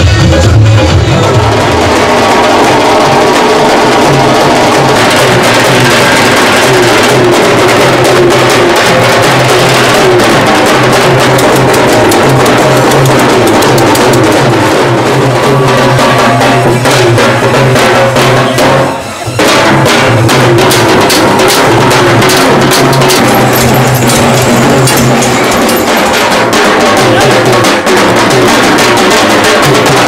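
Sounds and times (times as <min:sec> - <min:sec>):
bass drums and snare drums: 0:00.0 - 0:30.0.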